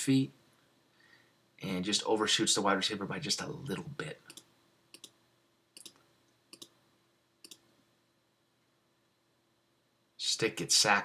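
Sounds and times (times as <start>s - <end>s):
computer mouse clicks: 4.3s - 5.2s, 5.8s - 6.8s, 7.4s - 7.7s.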